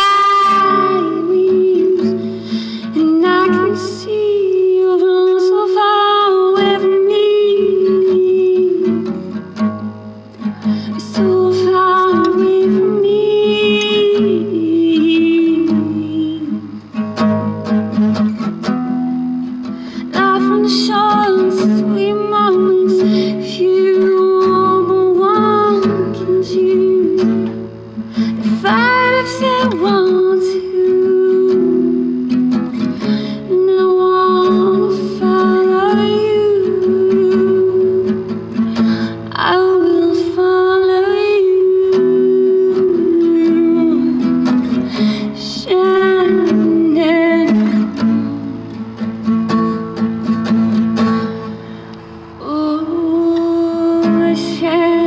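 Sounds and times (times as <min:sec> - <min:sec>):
acoustic guitar: 0:00.0 - 0:55.0.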